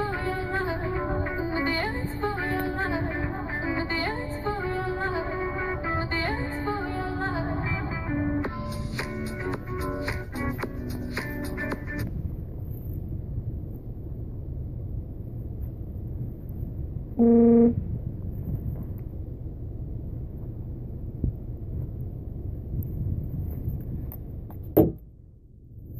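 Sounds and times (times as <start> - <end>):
wind rumble on microphone: 11.6 - 25.9
loud steady tone: 17.2 - 18.1.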